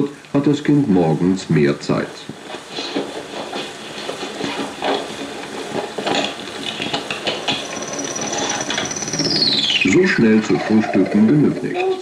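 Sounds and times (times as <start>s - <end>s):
knocks and rubs packing a satchel: 2.3s - 7.6s
high whistle gliding down: 7.6s - 10.2s.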